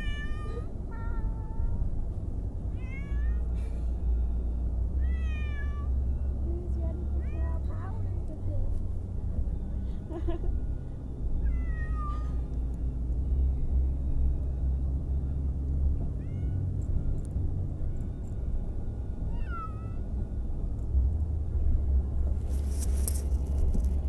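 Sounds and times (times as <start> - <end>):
cat meowing: 0.0 - 1.2, 5.0 - 5.9, 11.5 - 12.2
car interior rumble: 0.0 - 24.0
brief rustle: 22.3 - 24.0.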